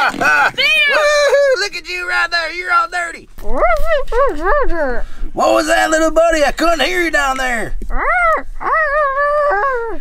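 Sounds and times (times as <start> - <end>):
child whining: 7.9 - 10.0.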